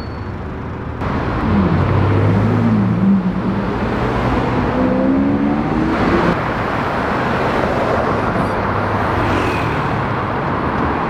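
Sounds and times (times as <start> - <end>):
road traffic noise: 0.0 - 11.0
car engine accelerating: 1.0 - 6.5.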